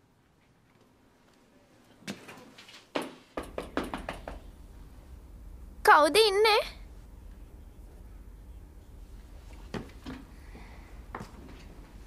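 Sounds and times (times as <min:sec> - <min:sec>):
fist knocking on door: 0:03.0 - 0:04.4.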